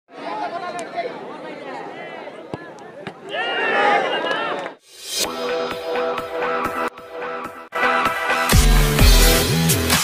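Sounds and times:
crowd chattering: 0:00.1 - 0:04.9.

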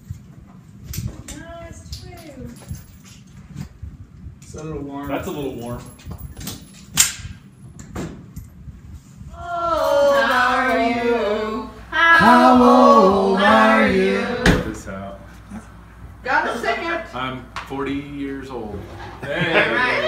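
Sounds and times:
voices singing together: 0:09.4 - 0:15.0.

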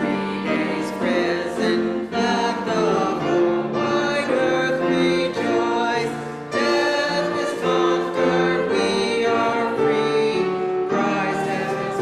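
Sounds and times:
voices singing a hymn: 0:00.0 - 0:12.0.

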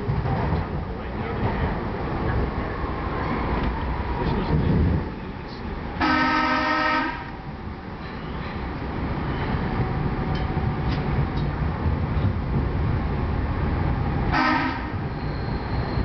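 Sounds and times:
train rumbling on rails: 0:00.0 - 0:16.0
train horn blast: 0:06.0 - 0:07.3, 0:14.3 - 0:15.0.

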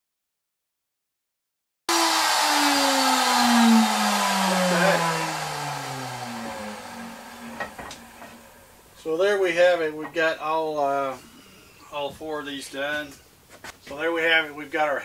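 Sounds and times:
router whine winding down: 0:01.9 - 0:08.8.

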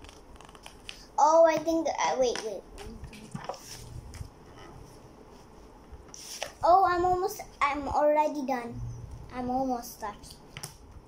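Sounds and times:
book pages being flipped: 0:00.0 - 0:06.6, 0:10.2 - 0:11.0.

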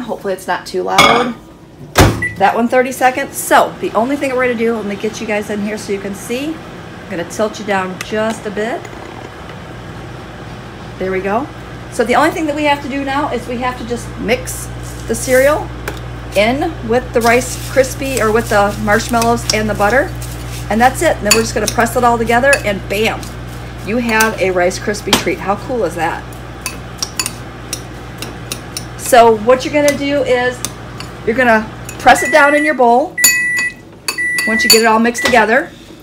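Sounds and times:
microwave oven humming: 0:00.0 - 0:36.0.

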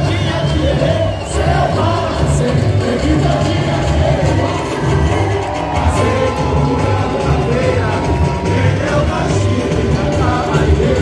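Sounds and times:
crowd singing: 0:00.0 - 0:11.0
lead singer singing: 0:00.0 - 0:11.0.

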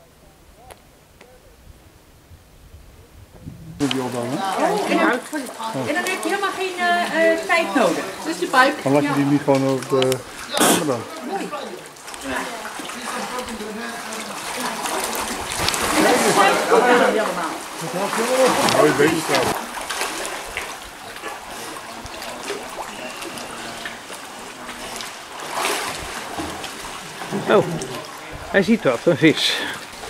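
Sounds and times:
water splashing and sloshing: 0:03.4 - 0:30.0
people talking: 0:03.8 - 0:15.3, 0:15.9 - 0:19.6.

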